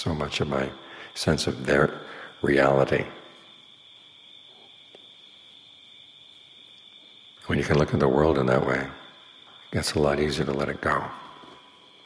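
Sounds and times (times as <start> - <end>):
crickets droning: 0.0 - 12.0.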